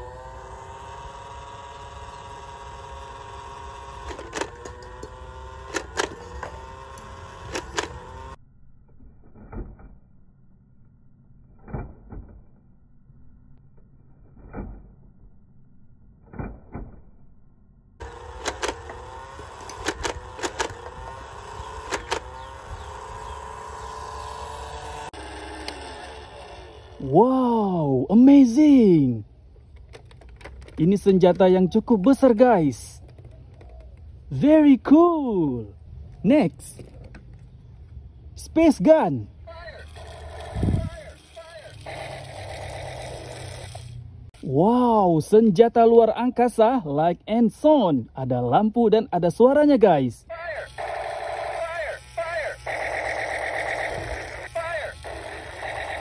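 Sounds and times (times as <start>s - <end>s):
toy gun motor whirring: 0.0s - 8.4s, 18.0s - 34.9s, 38.5s - 44.6s, 50.4s - 56.0s.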